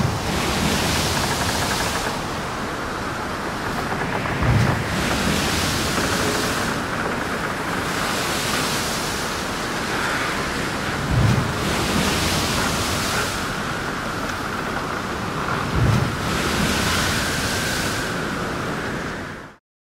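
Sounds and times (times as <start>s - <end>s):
ocean surf rushing: 0.0s - 19.6s.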